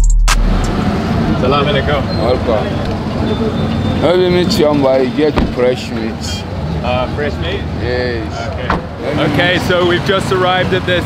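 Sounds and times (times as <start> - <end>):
drum-machine music beat: 0.0 - 0.8
street traffic din: 0.0 - 11.0
people talking: 1.4 - 11.0.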